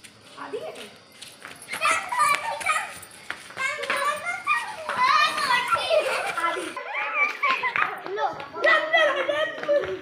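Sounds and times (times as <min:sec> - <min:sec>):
children shouting and squealing: 0:01.6 - 0:10.0.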